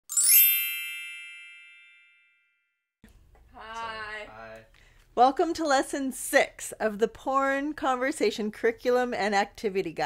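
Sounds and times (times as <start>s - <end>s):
bright chime: 0.1s - 2.6s.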